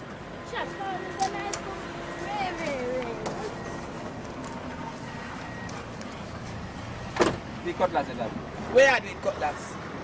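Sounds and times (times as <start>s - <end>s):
vehicle engine running: 0.0s - 10.0s
voices: 0.3s - 9.9s.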